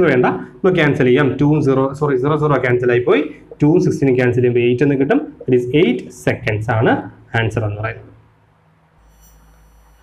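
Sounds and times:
steady low hum: 0:00.0 - 0:10.0
faint high whine: 0:08.9 - 0:10.0.

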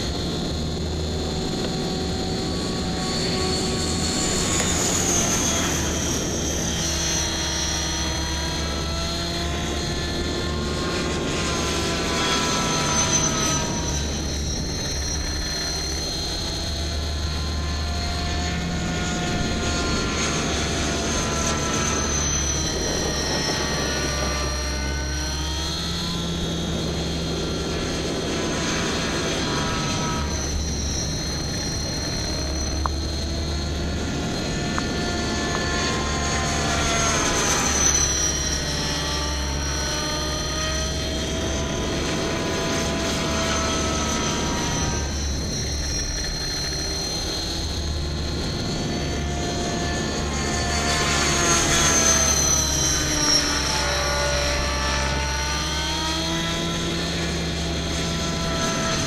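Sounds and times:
rc helicopter whine and rotor: 0:00.0 - 0:59.0.

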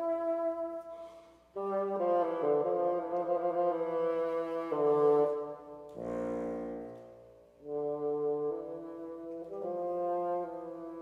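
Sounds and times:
bassoon playing slow melody: 0:00.0 - 0:00.8, 0:01.6 - 0:11.0.

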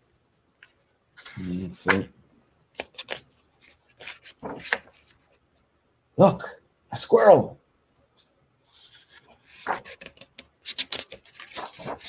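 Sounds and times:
book page turning: 0:00.6 - 0:02.0, 0:02.8 - 0:05.4, 0:08.7 - 0:12.0
paper rustling: 0:00.6 - 0:02.0, 0:02.8 - 0:05.4, 0:08.7 - 0:12.0.

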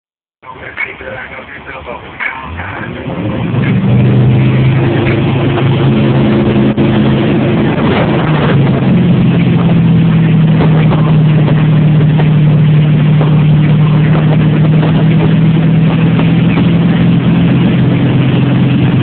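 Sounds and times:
engine running steadily: 0:00.4 - 0:19.0.

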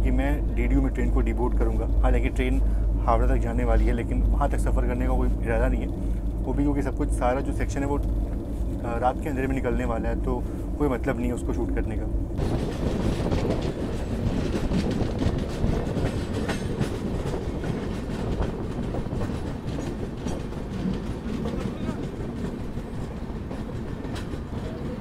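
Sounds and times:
train rumbling on rails: 0:00.0 - 0:25.0
wheels clattering over rail joints: 0:12.4 - 0:25.0.

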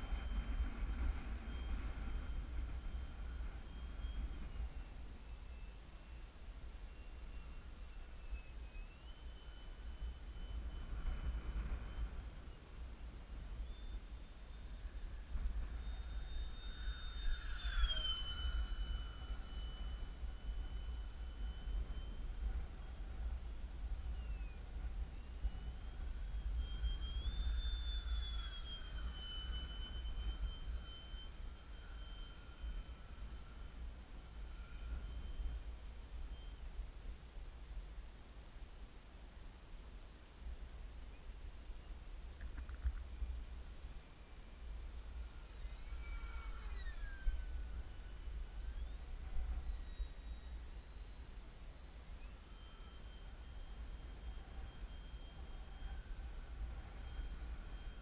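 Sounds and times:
rc jet fan high whine: 0:00.0 - 0:58.0
wind buffeting microphone: 0:10.0 - 0:13.7.

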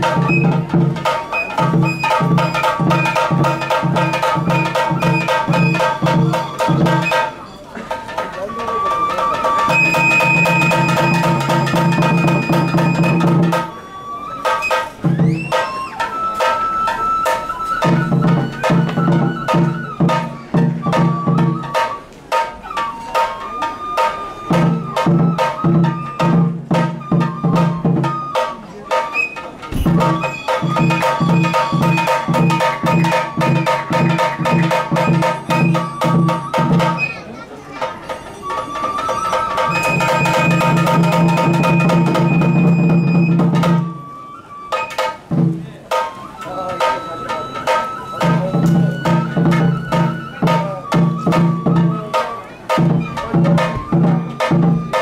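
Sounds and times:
high bamboo flute: 0:00.0 - 0:55.0
sharp drum strokes: 0:00.0 - 0:55.0
rapid low drumming: 0:29.7 - 0:37.1.

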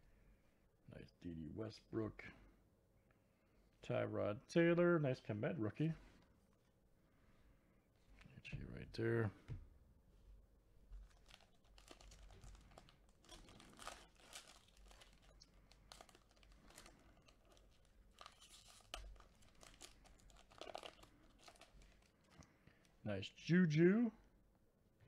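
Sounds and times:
wrapper crinkling and tearing: 0:11.0 - 0:22.5.

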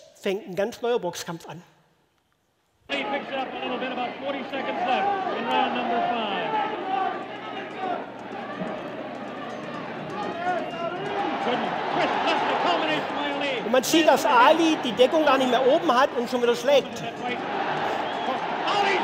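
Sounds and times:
crowd noise over loudspeakers: 0:02.9 - 0:19.0
commentator speaking: 0:11.6 - 0:17.4.

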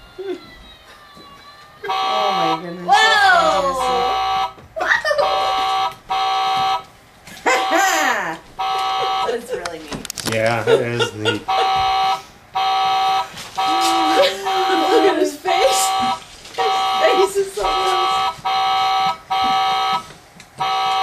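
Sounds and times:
toy car horn beeping: 0:01.8 - 0:04.6, 0:05.2 - 0:06.8, 0:07.5 - 0:08.0, 0:08.6 - 0:09.4, 0:11.5 - 0:15.1, 0:15.7 - 0:17.3, 0:17.9 - 0:21.0.

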